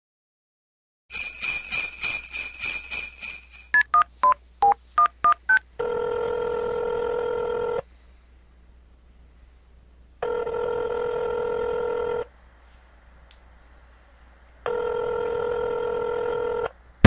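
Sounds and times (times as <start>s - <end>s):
bells jingling: 1.1s - 3.7s
telephone ringing tone: 5.8s - 7.8s, 10.2s - 12.3s, 14.7s - 16.7s.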